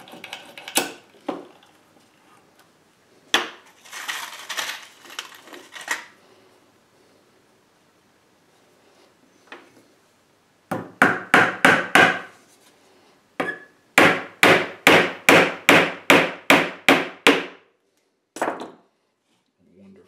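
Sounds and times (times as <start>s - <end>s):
hammer striking nail into wood: 10.7s - 12.3s, 13.4s - 17.6s.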